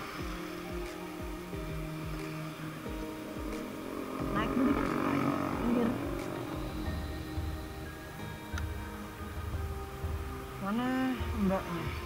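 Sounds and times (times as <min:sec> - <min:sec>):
motorcycle engine hum: 0:00.0 - 0:11.9
street traffic: 0:01.0 - 0:12.0.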